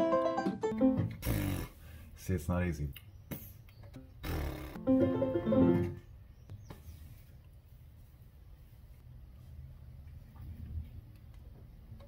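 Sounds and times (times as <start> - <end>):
electronic keyboard chord: 0.0 - 1.1, 4.8 - 6.0.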